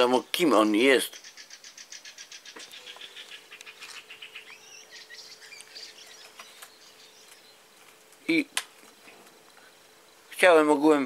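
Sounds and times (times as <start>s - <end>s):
birdsong chirps and warbling: 0.0s - 11.0s
faint steady hum: 0.0s - 11.0s.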